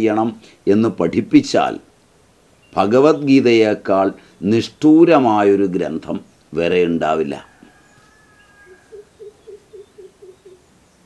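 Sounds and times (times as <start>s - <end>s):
animal hooting: 8.4s - 10.6s.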